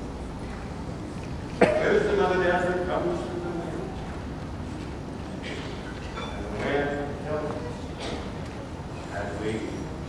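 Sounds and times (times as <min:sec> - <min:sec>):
man talking: 0:01.6 - 0:04.0, 0:09.1 - 0:09.9.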